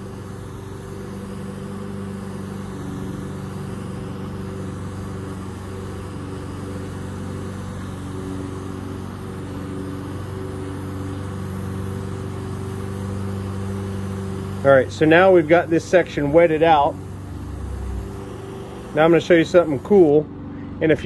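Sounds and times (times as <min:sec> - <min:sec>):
air hissing at nozzle: 0:00.0 - 0:20.2
compressor motor hum: 0:00.0 - 0:21.0.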